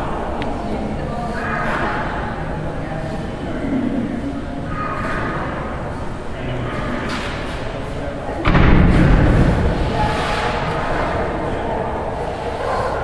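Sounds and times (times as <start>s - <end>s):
heavy thud on steel bars: 8.4s - 11.2s.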